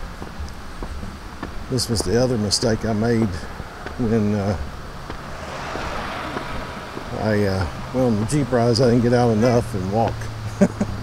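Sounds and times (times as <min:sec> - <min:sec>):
bicycle tyre whir passing: 0:03.4 - 0:09.8.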